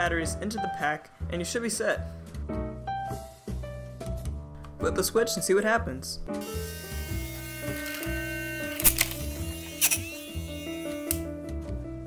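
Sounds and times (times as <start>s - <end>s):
jazz piano music: 0.0s - 12.0s.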